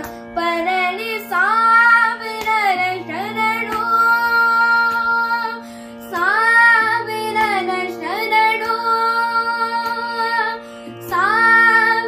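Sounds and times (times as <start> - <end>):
boy singing: 0.0 - 12.0
steady electronic drone: 0.0 - 12.0.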